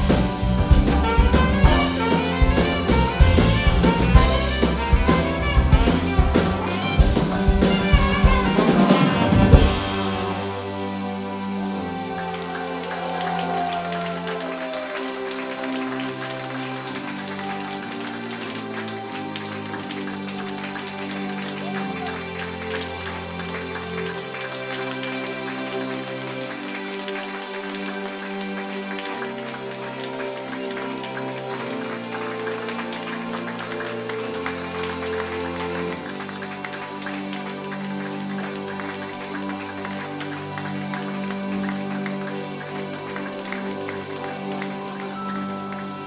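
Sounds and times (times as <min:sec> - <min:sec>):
steady drum beat: 0:00.0 - 0:10.6
ticking percussion: 0:00.0 - 0:10.6
bass line: 0:00.0 - 0:12.0
held chords: 0:00.0 - 0:25.9.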